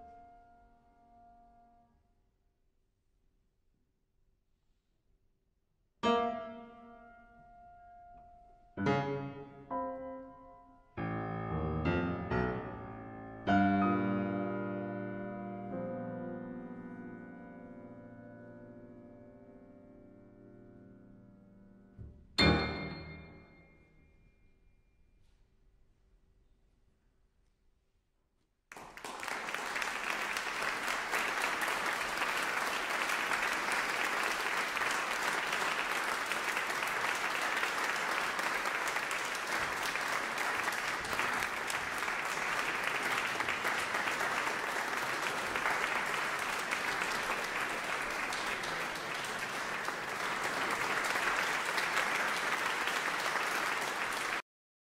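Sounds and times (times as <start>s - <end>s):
audience applauding: 28.7s - 54.4s.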